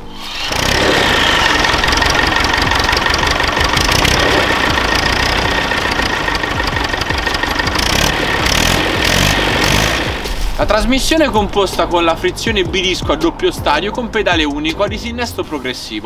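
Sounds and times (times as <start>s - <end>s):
tractor diesel engine running: 0.0s - 14.9s.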